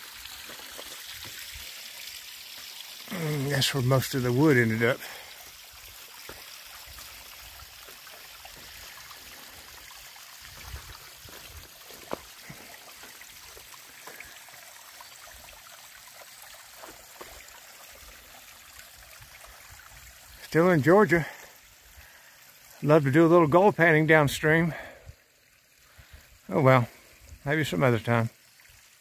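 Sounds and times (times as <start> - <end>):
creek water running: 0.0 - 29.0
footfalls on rocky trail: 10.5 - 13.7.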